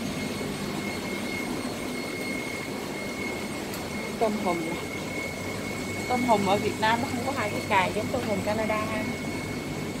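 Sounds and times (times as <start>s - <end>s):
air pumps running: 0.0s - 10.0s
thin high whine: 0.0s - 10.0s.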